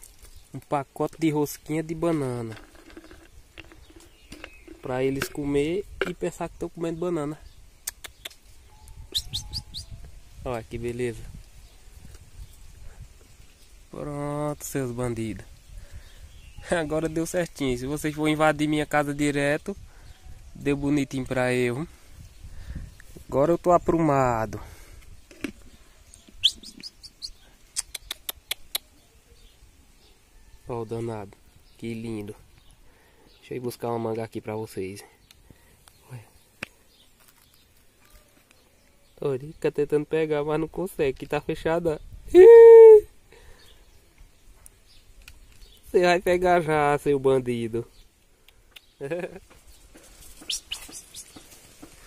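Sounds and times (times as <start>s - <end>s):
marmosets chirping: 2.7s - 5.7s, 7.9s - 10.0s, 25.7s - 30.2s, 48.7s - 51.7s
marmoset clicky calls: 7.8s - 10.0s, 26.1s - 29.0s, 50.3s - 51.5s.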